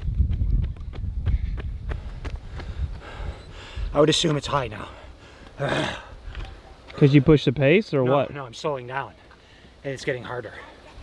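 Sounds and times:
running footsteps on asphalt: 0.0s - 4.0s
wind rumble on microphone: 0.0s - 4.0s.

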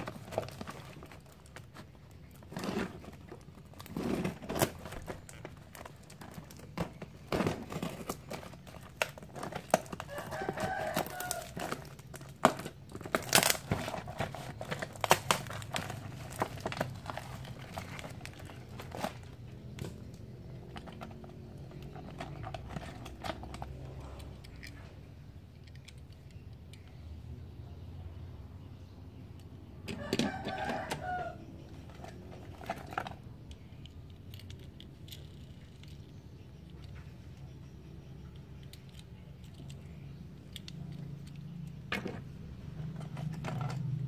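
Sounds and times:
plastic mailer crinkling: 0.0s - 24.0s
tape ripping: 7.5s - 19.3s.

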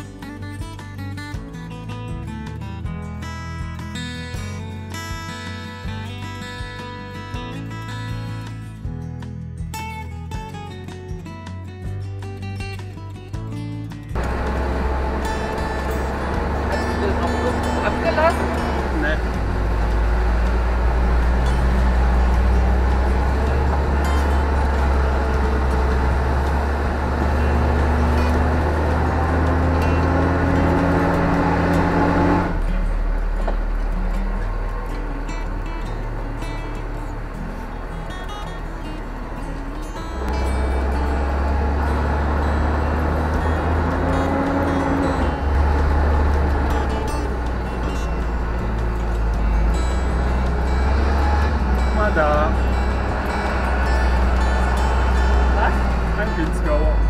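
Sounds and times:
plucked guitar music: 0.0s - 57.0s
truck engine and road rumble: 0.0s - 57.0s
engine whine: 14.2s - 57.0s.

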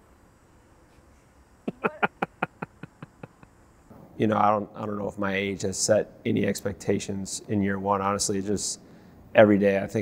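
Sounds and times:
person laughing: 1.7s - 3.5s.

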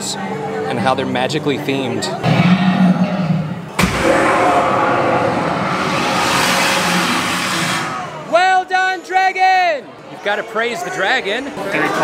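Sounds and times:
fire blast: 3.7s - 8.4s
rush of flame: 3.8s - 8.3s.

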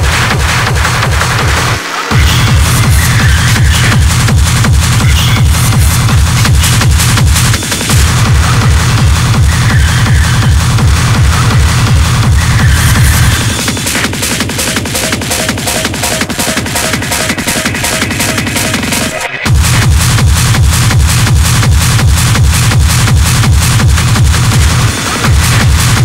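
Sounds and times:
dense noisy percussion: 0.0s - 26.0s
fast four-on-the-floor kick drum: 0.0s - 26.0s.

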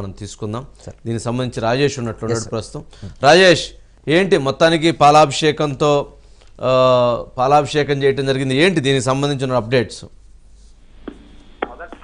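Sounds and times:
man talking over telephone: 11.6s - 12.0s.

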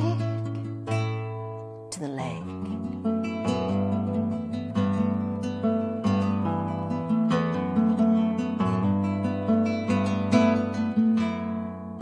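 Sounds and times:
classical guitar playing: 0.0s - 12.0s.

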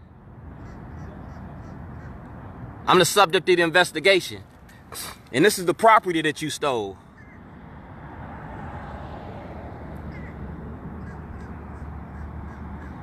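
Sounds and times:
faint bird calls: 0.6s - 2.2s, 7.1s - 7.4s, 10.1s - 10.4s.

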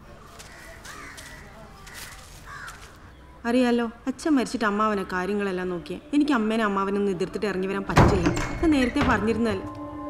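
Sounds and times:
crows cawing: 0.4s - 3.1s.

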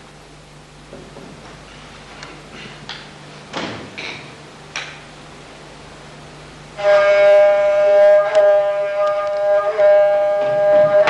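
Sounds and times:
bowed folk fiddle drone: 6.8s - 11.0s.

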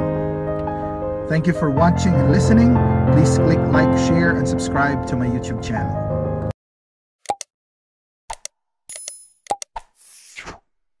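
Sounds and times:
short pops and clicks: 7.2s - 7.5s, 8.3s - 10.0s.

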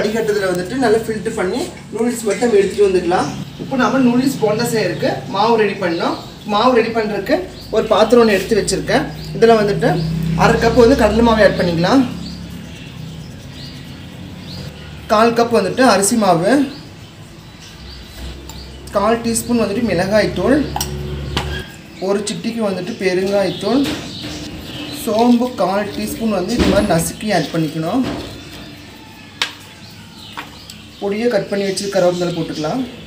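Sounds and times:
small bird chirping: 0.0s - 33.0s.

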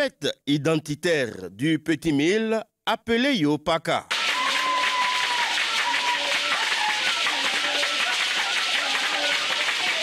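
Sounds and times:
shaking and clapping: 4.1s - 10.0s.

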